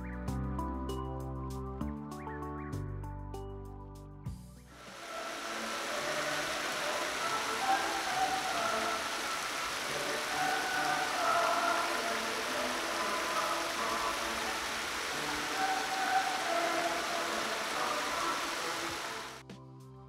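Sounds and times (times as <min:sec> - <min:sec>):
soft background music: 0:00.0 - 0:20.0
fountain jets splashing into basin: 0:04.8 - 0:19.4.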